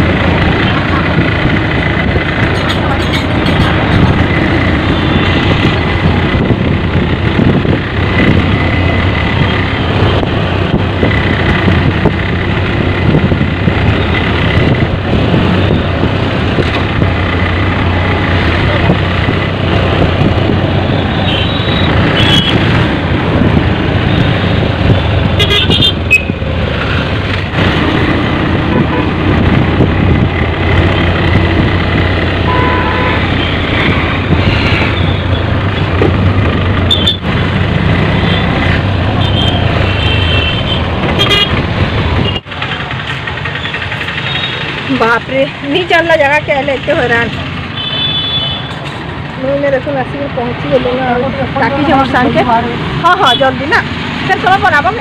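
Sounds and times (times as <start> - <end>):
bus engine and road rumble: 0.0 - 55.0
horns tooting: 20.9 - 22.7, 25.3 - 26.4, 32.4 - 34.0, 36.8 - 37.4, 38.0 - 41.6.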